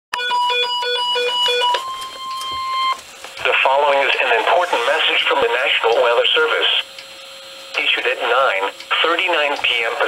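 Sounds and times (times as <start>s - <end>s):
pulsing low beep: 0.2s - 3.0s.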